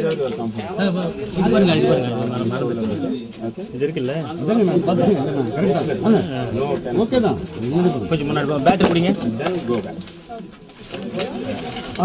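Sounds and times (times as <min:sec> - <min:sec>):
man talking: 0:00.0 - 0:10.1.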